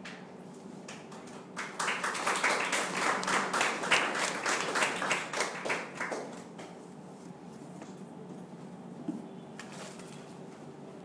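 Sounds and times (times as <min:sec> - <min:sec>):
people clapping: 0:00.0 - 0:06.9.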